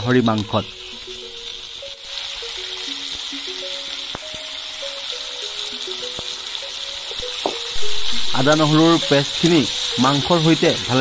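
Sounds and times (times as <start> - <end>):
meat sizzling in hot oil: 0.0 - 11.0
slow background music: 0.0 - 11.0.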